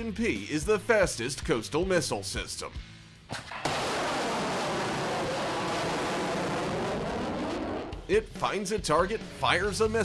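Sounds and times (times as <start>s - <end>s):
missile launch: 3.3s - 8.0s
rocket booster rushing noise: 3.6s - 8.0s.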